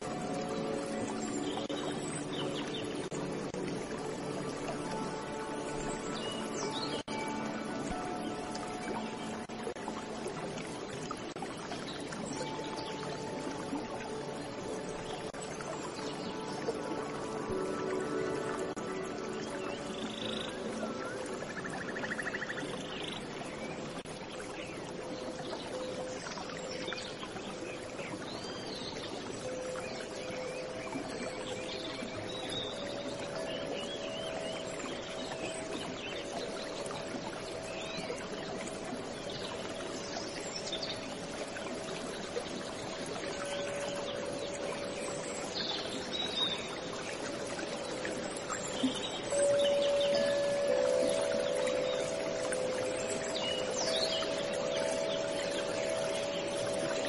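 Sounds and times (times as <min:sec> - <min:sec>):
birds chirping: 0:00.0 - 0:57.0
running water: 0:00.0 - 0:57.0
soft sustained music: 0:00.0 - 0:57.0.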